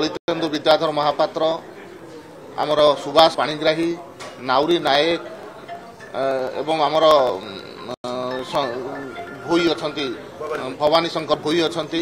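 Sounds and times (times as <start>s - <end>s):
man speaking: 6.0s - 12.0s.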